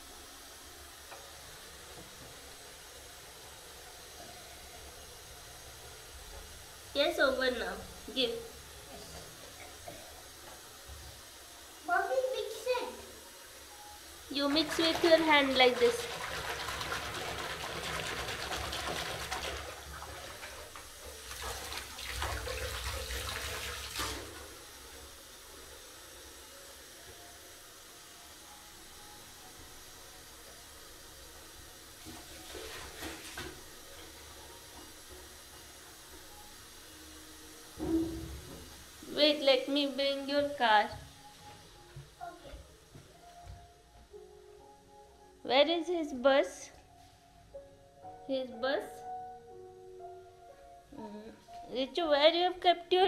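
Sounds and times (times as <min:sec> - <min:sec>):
faint steady hiss: 0:00.0 - 0:16.0, 0:19.8 - 0:53.0
hands splashing bath water: 0:14.4 - 0:24.4
soft footsteps: 0:40.4 - 0:44.1.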